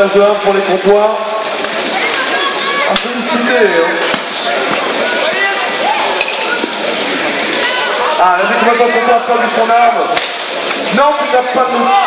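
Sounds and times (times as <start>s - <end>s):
voices shouting: 0.5s - 12.0s.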